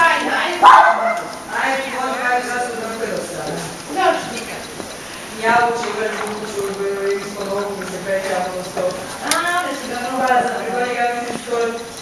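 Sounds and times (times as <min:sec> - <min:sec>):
people talking: 0:00.0 - 0:12.0
dog barking: 0:00.6 - 0:01.3.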